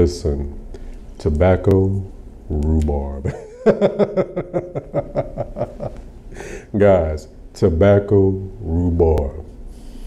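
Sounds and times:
man chuckling: 3.2 - 6.7.

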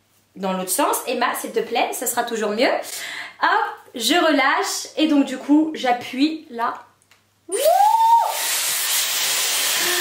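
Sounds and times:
hair styler blowing air: 7.5 - 10.0.

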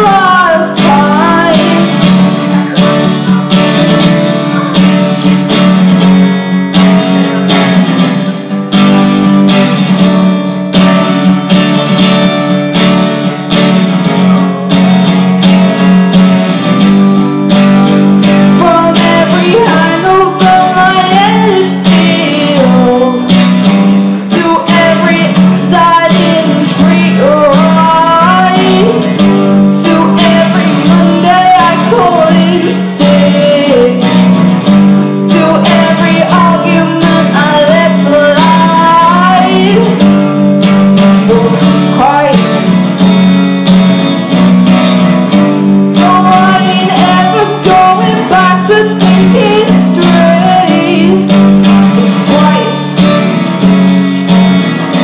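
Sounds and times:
woman singing: 0.0 - 5.3, 17.6 - 43.0, 45.4 - 53.5
acoustic guitar strumming: 0.0 - 55.0.

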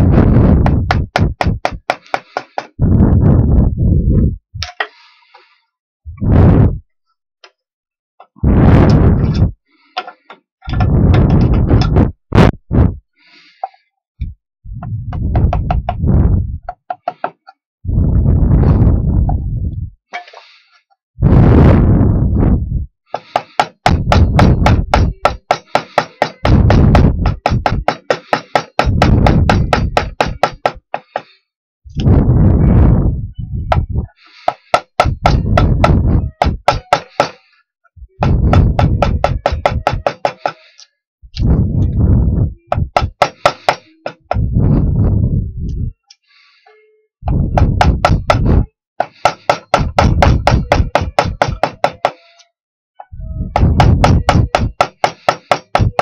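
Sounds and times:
wood rasp scraping wood: 0.9 - 2.8, 23.1 - 31.4, 34.2 - 37.5, 38.2 - 40.8, 42.8 - 44.4, 47.6 - 52.5, 53.6 - 56.0.

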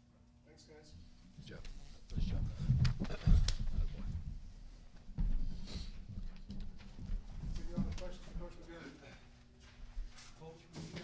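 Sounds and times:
footsteps: 1.0 - 11.0
chairs knocking and bumping: 5.1 - 8.6.

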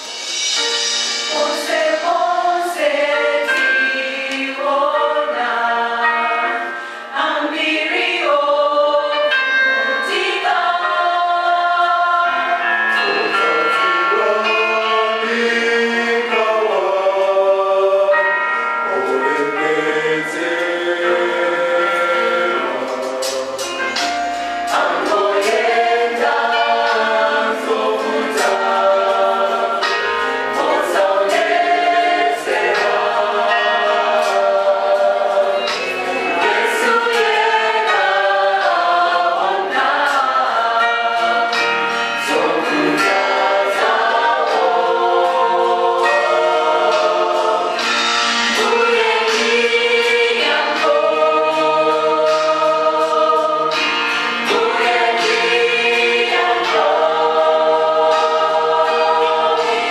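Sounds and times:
vocal group singing in harmony: 0.0 - 59.9.

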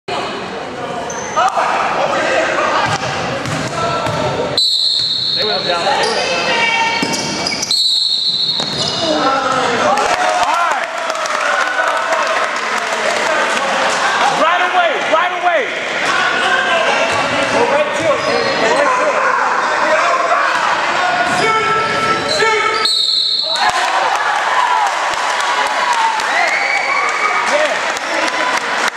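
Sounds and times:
spectators' voices and shouts: 0.1 - 7.7, 8.4 - 28.9
sneakers squeaking: 1.0 - 1.4, 2.8 - 9.8, 17.0 - 19.3
shrill referee's whistle: 4.6 - 6.3, 7.1 - 9.0, 22.3 - 23.7.

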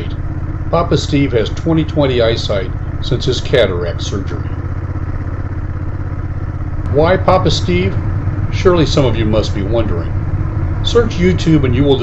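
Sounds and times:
motorcycle engine cruising: 0.0 - 12.0.

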